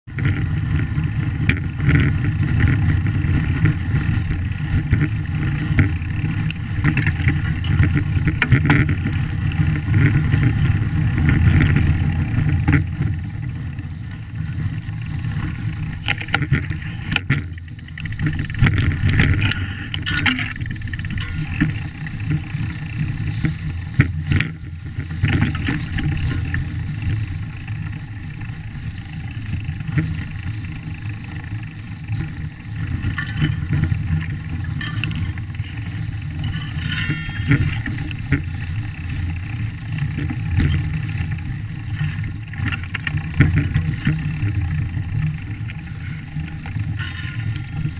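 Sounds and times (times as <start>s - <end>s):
bike tyre rumbling on trail: 0.0s - 47.9s
bike clicks and knocks: 0.1s - 47.9s.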